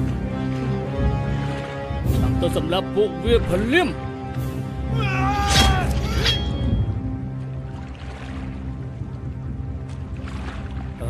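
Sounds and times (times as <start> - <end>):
music: 0.0 - 11.0
high wailing cry: 4.9 - 6.5.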